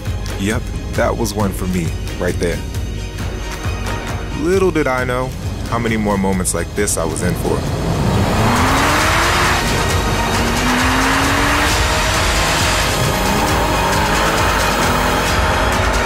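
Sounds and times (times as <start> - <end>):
music: 0.0 - 16.0
car engine revving: 5.3 - 16.0.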